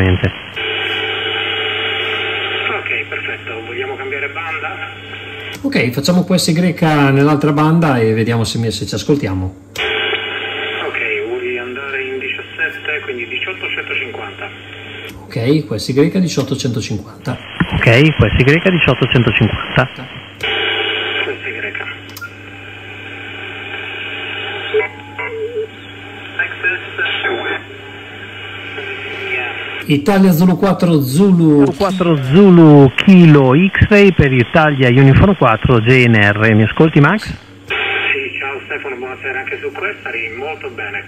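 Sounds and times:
voice over radio speaker: 0.0 - 0.7, 2.4 - 5.5, 17.4 - 20.2, 21.0 - 22.0, 24.3 - 30.6, 31.2 - 41.0
steady low hum: 0.0 - 41.0.

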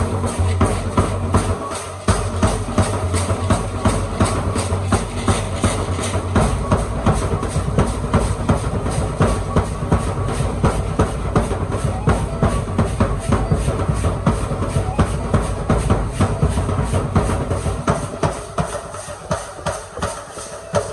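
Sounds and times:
big drum beating: 0.0 - 20.9.

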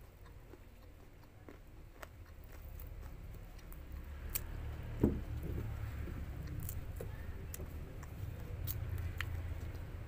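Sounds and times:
fruit rind crackling: 0.0 - 10.0
low steady hum: 0.0 - 10.0.

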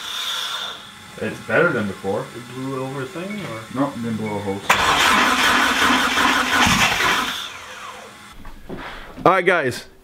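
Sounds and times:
starter motor cranking: 4.1 - 8.2.

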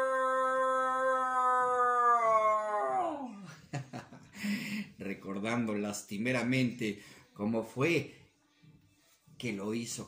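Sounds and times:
man imitating coyote howl: 0.0 - 3.4.

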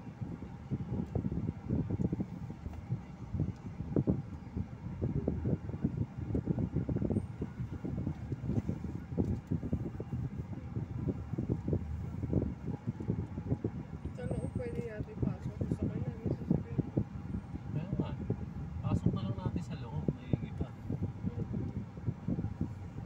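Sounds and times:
car engine rumble in cabin: 0.0 - 23.0.

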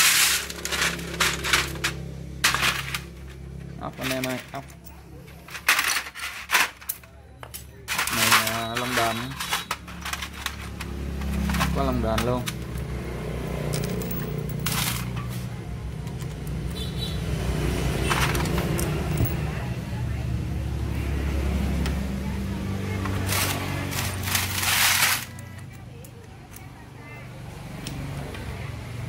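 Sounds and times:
traffic rumble: 0.0 - 29.0.

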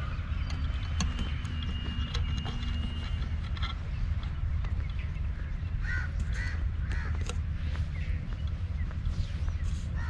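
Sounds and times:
bird calling: 0.0 - 10.0
steady low rumble: 0.0 - 10.0.

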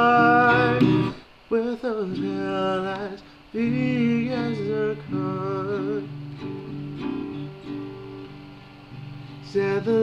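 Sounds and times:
acoustic guitar strummed chords: 0.0 - 10.0.

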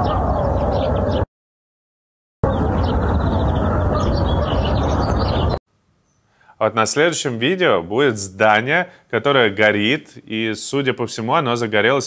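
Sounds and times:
birds chirping: 0.0 - 1.3, 2.4 - 6.4.

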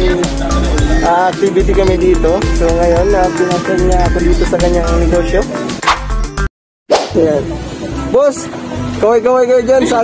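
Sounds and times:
melodic line: 0.0 - 6.5.

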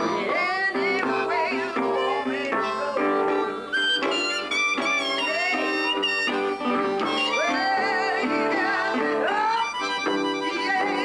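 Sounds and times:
woman singing: 0.0 - 3.8, 5.0 - 6.0, 7.0 - 11.0
harmonica playing blues: 0.0 - 11.0
strummed acoustic guitar: 0.0 - 11.0.

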